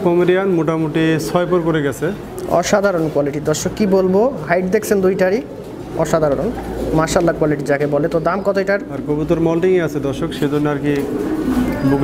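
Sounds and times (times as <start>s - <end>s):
people talking: 0.0s - 12.0s
pigeons cooing: 0.0s - 12.0s.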